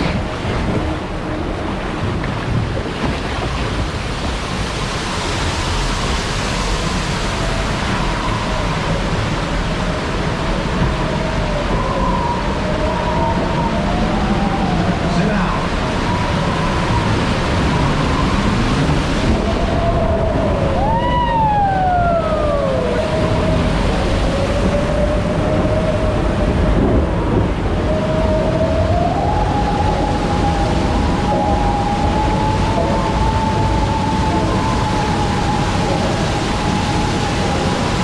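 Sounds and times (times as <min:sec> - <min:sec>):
log flume ride rushing: 0:00.0 - 0:38.0.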